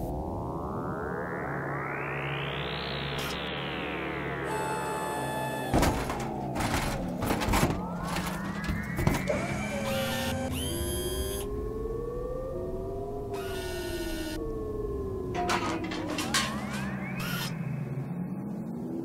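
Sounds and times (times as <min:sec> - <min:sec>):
sliding electronic tones: 0:03.0 - 0:03.7, 0:04.4 - 0:11.5, 0:13.4 - 0:18.2.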